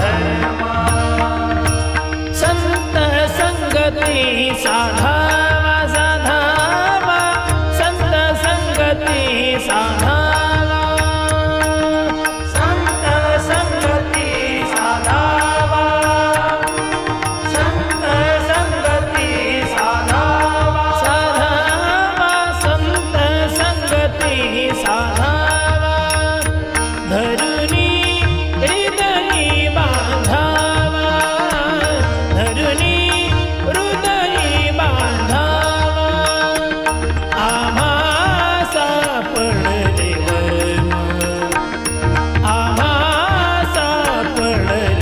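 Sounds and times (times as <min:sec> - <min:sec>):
held drone: 0:00.0 - 0:05.0
man singing devotional song: 0:00.0 - 0:45.0.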